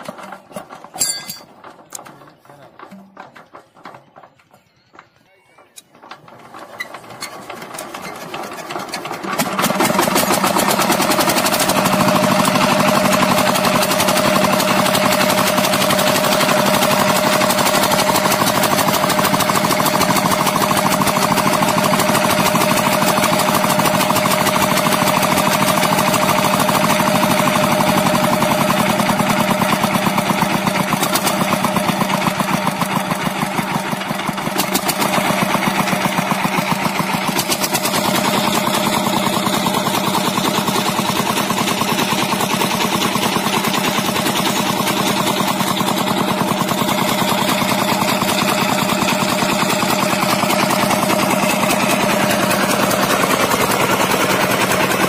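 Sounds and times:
diesel engine knocking: 5.8s - 55.0s.

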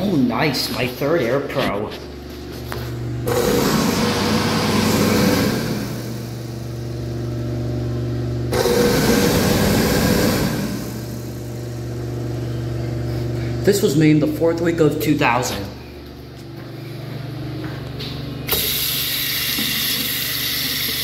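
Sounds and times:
hand dryer motor hum: 0.0s - 21.0s.

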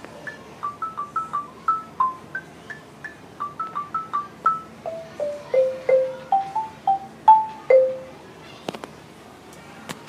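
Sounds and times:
xylophone notes: 0.2s - 8.2s.

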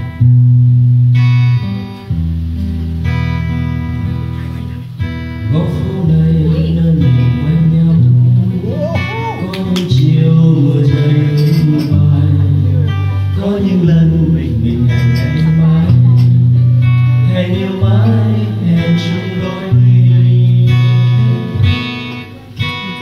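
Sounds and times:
acoustic guitar strumming chords: 0.0s - 23.0s
man singing: 5.4s - 23.0s.

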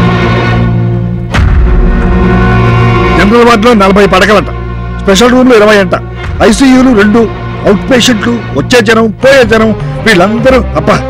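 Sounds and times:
deep bass swell: 0.0s - 5.0s
sustained low orchestral chords: 0.0s - 11.0s
loud boom: 1.3s - 3.6s.

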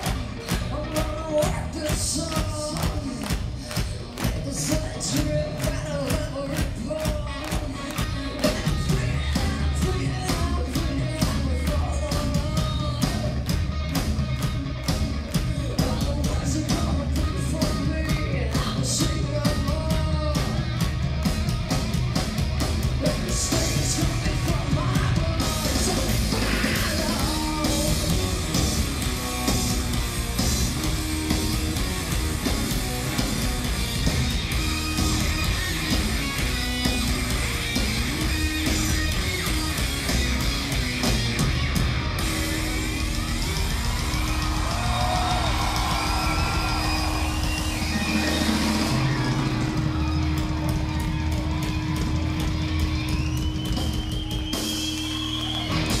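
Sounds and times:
live rock band playing loudly: 0.0s - 56.0s.

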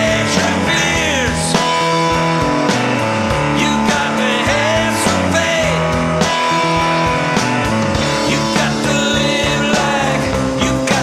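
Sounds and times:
bass and drums: 0.0s - 11.0s
rock and roll lead guitar: 0.0s - 11.0s.

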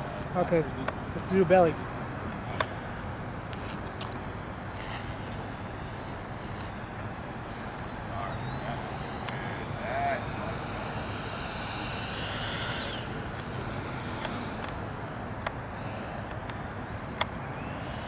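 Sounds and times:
electric ducted fans whining: 0.0s - 18.0s.

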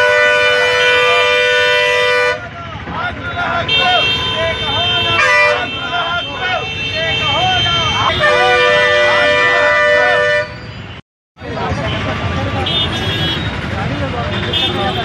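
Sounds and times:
vehicle horns blasting: 0.0s - 2.6s, 3.2s - 11.0s, 11.8s - 15.0s
voices shouting: 2.4s - 10.3s.

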